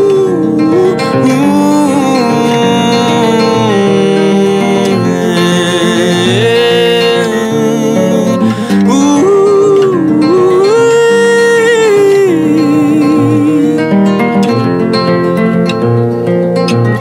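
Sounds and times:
man singing with vibrato: 0:00.0 - 0:14.6
nylon-string acoustic guitar: 0:00.0 - 0:17.0.

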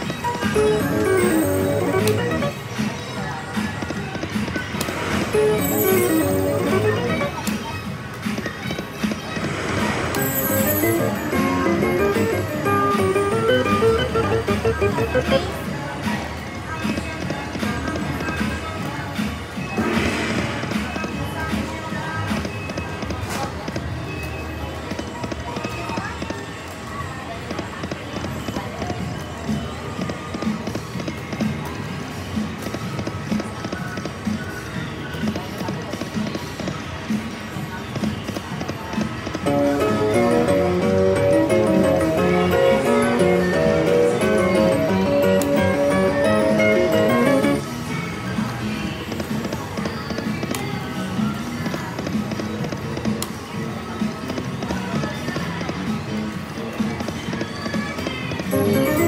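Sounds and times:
slot machine electronic music: 0:00.2 - 0:02.8, 0:05.1 - 0:07.4, 0:10.1 - 0:15.8, 0:39.3 - 0:47.8, 0:58.4 - 0:59.0
melodic win jingle: 0:05.4 - 0:07.3.

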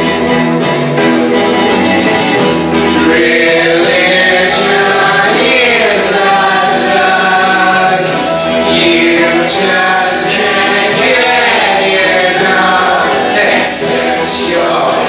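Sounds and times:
choir singing in harmony: 0:03.0 - 0:15.0.

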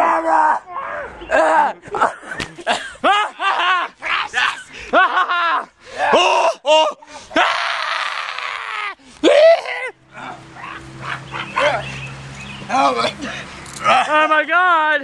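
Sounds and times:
young voices yelping and shrieking: 0:00.0 - 0:01.8, 0:06.0 - 0:11.9.

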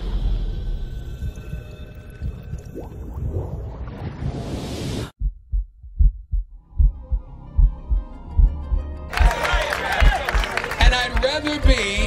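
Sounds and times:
deep pulsing rumble: 0:05.2 - 0:09.0.

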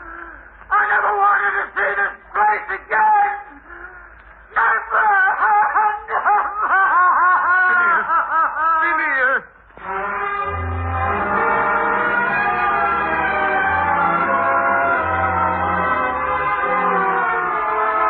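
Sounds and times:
man wailing in despair: 0:00.0 - 0:09.0
music: 0:09.8 - 0:18.0.

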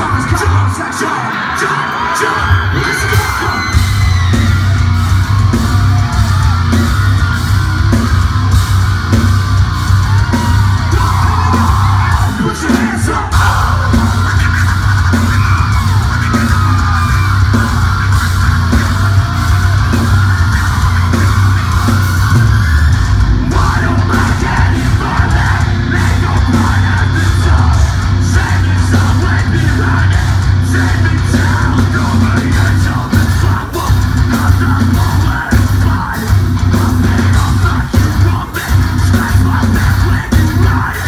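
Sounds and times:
shouted and sung vocals: 0:00.0 - 0:08.6, 0:09.6 - 0:41.0
distorted guitars: 0:00.0 - 0:41.0
drums: 0:00.0 - 0:41.0
heavy bass: 0:00.0 - 0:41.0.

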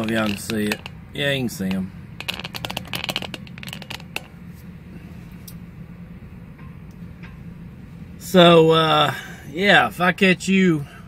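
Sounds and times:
phone handling clicks and rustles: 0:00.0 - 0:04.4
low steady hum: 0:00.0 - 0:11.0.

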